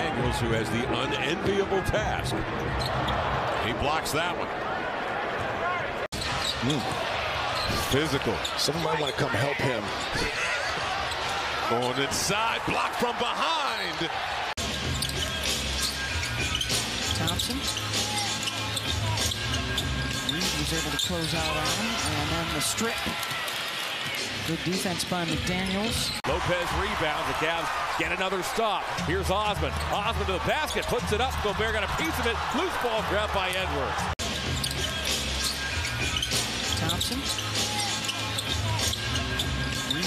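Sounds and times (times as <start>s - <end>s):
arena crowd noise: 0.0s - 40.0s.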